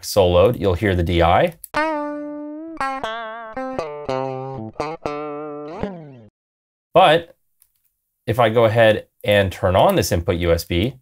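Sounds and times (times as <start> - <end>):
dry electric guitar lead: 1.7 - 6.3.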